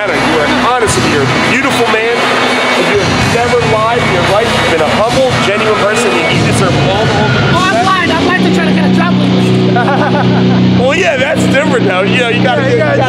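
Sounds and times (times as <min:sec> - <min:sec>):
men talking and laughing: 0:00.0 - 0:13.0
steady low hum: 0:00.0 - 0:13.0.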